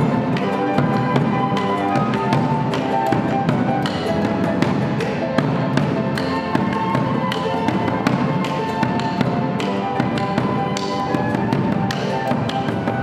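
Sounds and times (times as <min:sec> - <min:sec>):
cello playing: 0:00.0 - 0:13.0
flutes playing: 0:00.0 - 0:13.0.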